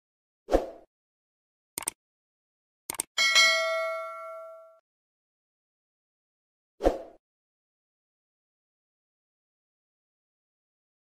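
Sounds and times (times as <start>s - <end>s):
notification bell ding: 3.2s - 4.8s.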